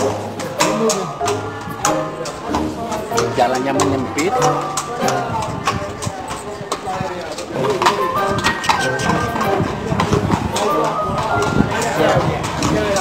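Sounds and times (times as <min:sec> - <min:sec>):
music: 0:00.0 - 0:05.6, 0:07.5 - 0:13.0
people talking: 0:00.0 - 0:13.0.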